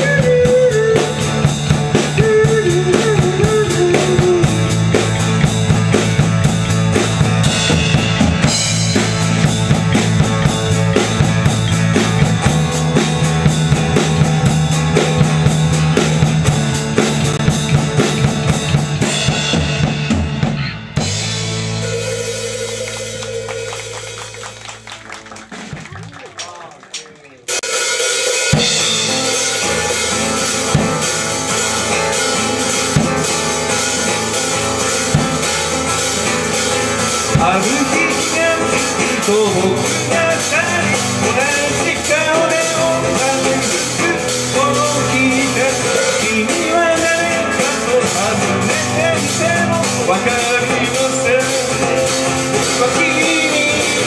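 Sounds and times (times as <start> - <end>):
drums: 0.0 - 54.0
live band playing: 0.0 - 54.0.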